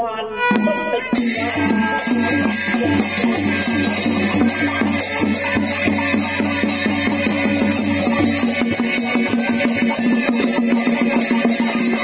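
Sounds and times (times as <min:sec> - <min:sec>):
small hand-held gong: 0:00.3 - 0:12.0
drum strokes: 0:00.4 - 0:12.0
small cymbals clinking: 0:01.2 - 0:12.0.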